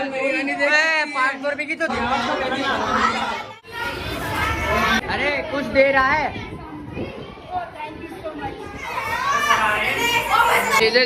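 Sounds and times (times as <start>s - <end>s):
hubbub of chatter: 0.0s - 11.0s.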